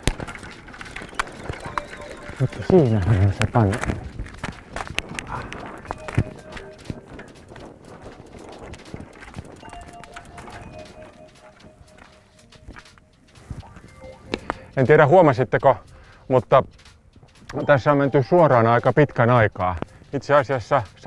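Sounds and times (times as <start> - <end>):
bike leaned against signpost: 0.0 - 13.8
cycling shoes crunching on gravel: 0.0 - 14.8.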